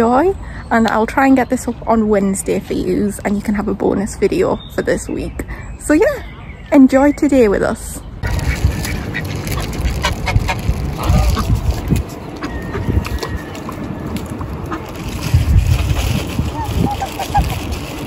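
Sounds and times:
ducks quacking: 0:08.2 - 0:15.2, 0:16.4 - 0:17.8
low microphone rumble: 0:08.2 - 0:18.0.

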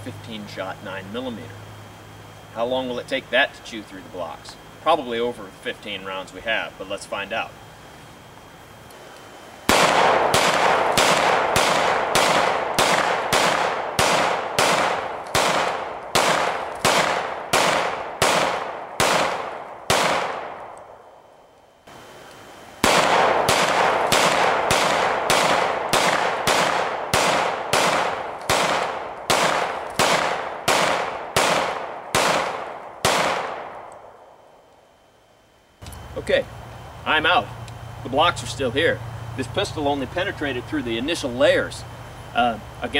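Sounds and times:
pistol shots: 0:09.7 - 0:20.9, 0:22.8 - 0:34.2.

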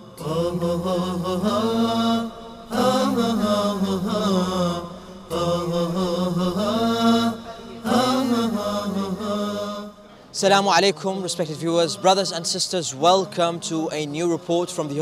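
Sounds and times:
solo voice chanting: 0:00.0 - 0:14.2.

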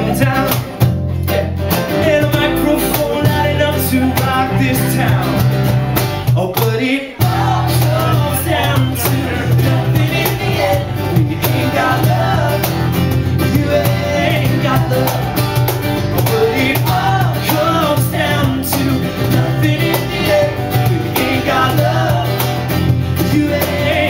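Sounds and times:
drums keeping a steady beat: 0:00.0 - 0:24.0
live band playing: 0:00.0 - 0:24.0.

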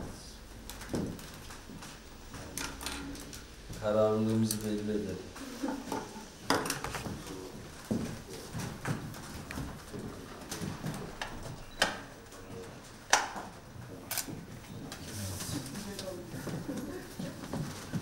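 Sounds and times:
person laughing: 0:05.4 - 0:06.3.

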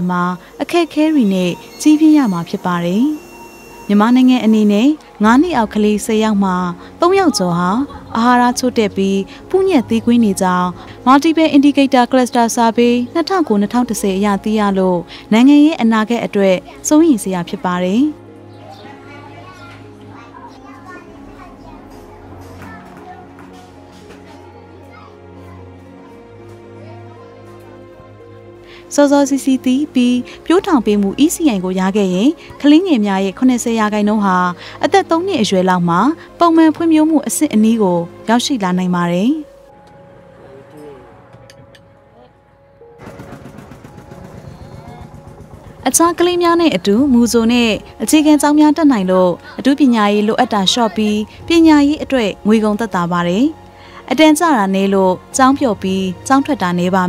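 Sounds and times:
soft background music: 0:00.0 - 0:57.0
young children chattering: 0:07.0 - 0:08.8, 0:16.4 - 0:28.5, 0:49.1 - 0:51.9.

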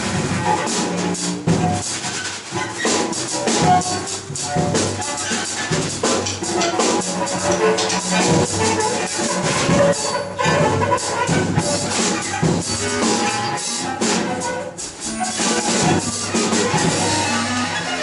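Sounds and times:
drum and cymbal clatter: 0:00.0 - 0:18.0
bowed cello notes: 0:16.0 - 0:18.0.

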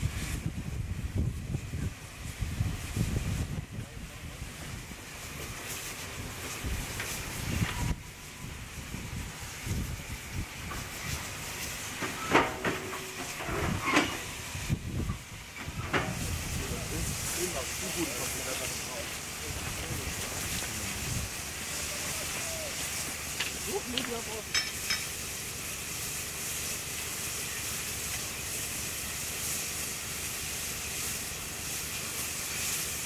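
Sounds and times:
wind noise on microphone: 0:00.0 - 0:04.9, 0:06.6 - 0:11.2, 0:13.4 - 0:17.2, 0:19.8 - 0:21.4
steady hiss of steam: 0:00.0 - 0:33.0
steam locomotive moving slowly: 0:00.0 - 0:33.0
sharp metallic clanks: 0:24.5 - 0:25.2.

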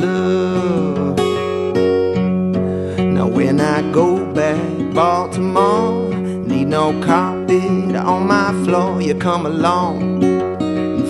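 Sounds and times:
man singing: 0:00.0 - 0:01.9, 0:02.9 - 0:10.4
acoustic guitar: 0:00.0 - 0:11.0.

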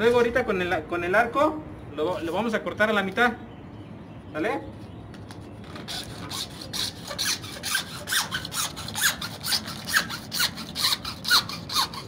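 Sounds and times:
hacksaw cutting plastic pipe: 0:05.7 - 0:12.0.

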